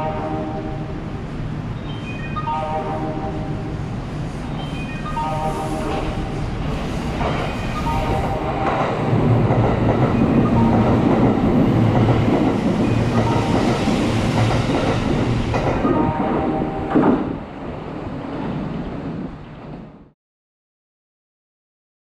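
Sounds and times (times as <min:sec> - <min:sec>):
train passing at speed: 0:00.0 - 0:20.2.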